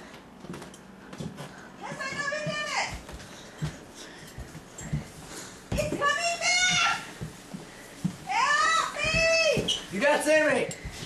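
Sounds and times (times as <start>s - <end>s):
person crawling on floor: 0.1s - 11.0s.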